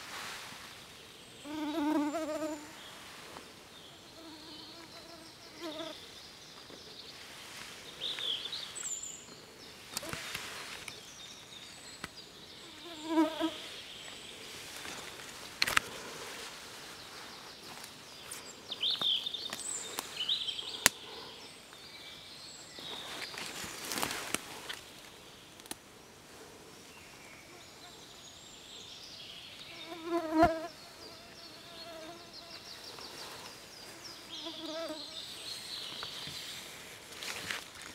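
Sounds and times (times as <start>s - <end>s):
faint insect buzzing: 1.4s - 2.9s, 3.8s - 6.0s, 12.6s - 13.8s, 29.7s - 35.4s
fly buzzing past: 1.5s - 2.8s, 4.1s - 6.0s, 12.7s - 13.6s, 29.8s - 32.5s.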